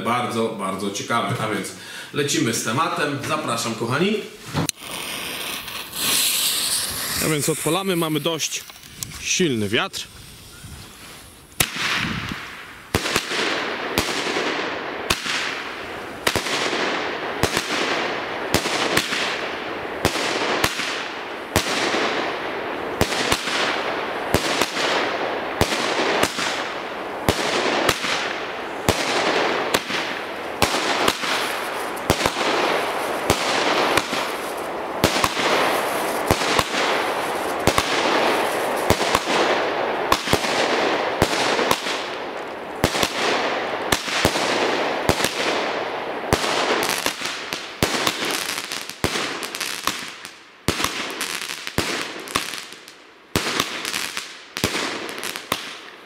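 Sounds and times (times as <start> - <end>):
crackling hiss of bursting stars: 1.0 - 51.2
fuse hiss: 4.2 - 11.6
firework launch pops: 4.4 - 9.3, 10.2 - 15.6, 23.0 - 39.5.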